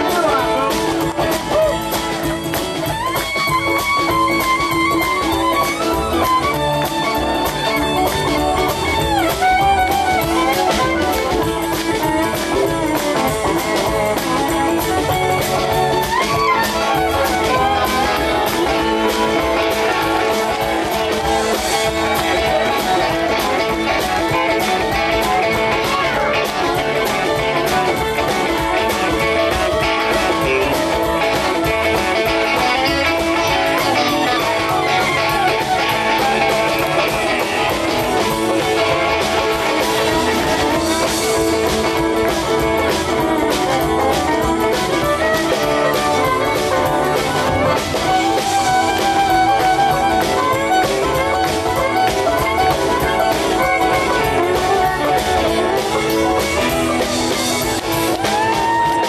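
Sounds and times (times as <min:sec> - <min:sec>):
country string band playing: 0:00.0 - 0:59.0
plucked guitar strings: 0:00.0 - 0:59.0.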